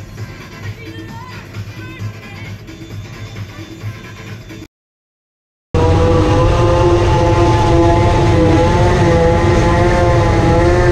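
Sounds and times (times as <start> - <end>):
large engine running steadily: 5.8 - 10.9.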